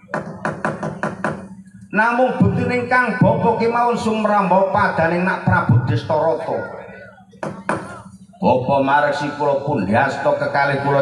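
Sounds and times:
wooden mallet rapping: 0:00.0 - 0:01.5, 0:07.4 - 0:08.0
low steady hum: 0:00.0 - 0:11.0.

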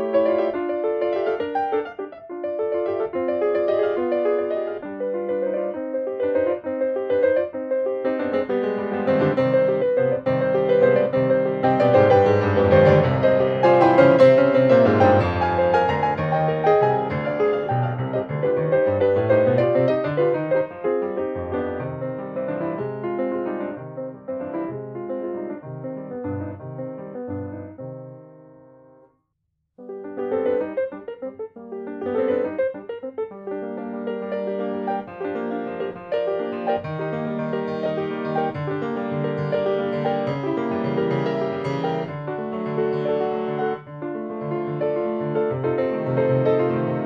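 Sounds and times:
solo piano music: 0:00.0 - 0:29.1, 0:29.8 - 0:47.0.

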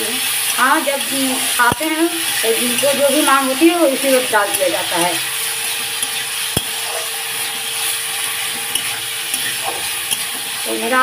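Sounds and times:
onion and potato sizzling in oil: 0:00.0 - 0:11.0.

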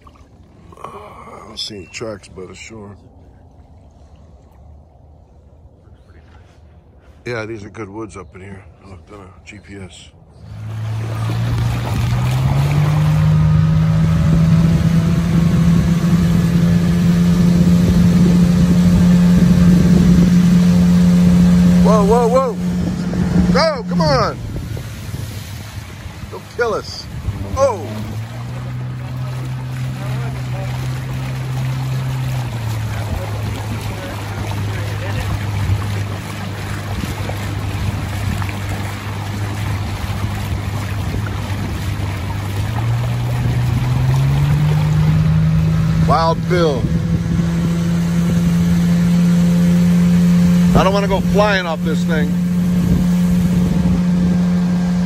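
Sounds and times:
boat motor droning: 0:00.0 - 0:07.0, 0:09.0 - 0:55.0.

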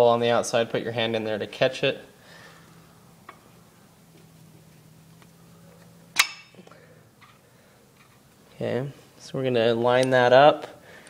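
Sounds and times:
sharp metallic clink: 0:06.2 - 0:06.6.

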